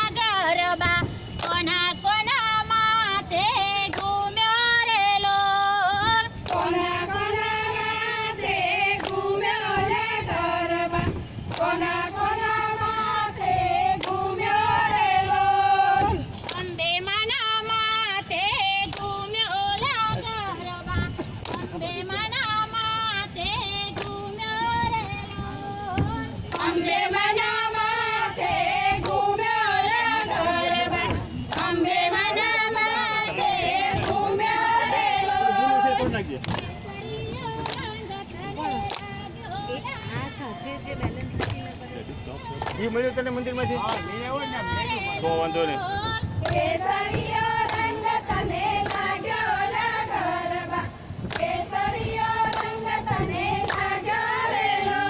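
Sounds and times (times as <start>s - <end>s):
woman singing: 0.0s - 10.9s, 11.6s - 34.9s.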